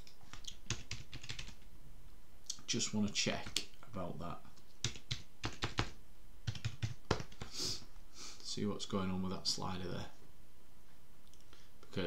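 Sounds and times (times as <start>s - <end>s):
computer keyboard typing: 0.3s - 1.6s, 4.8s - 7.4s.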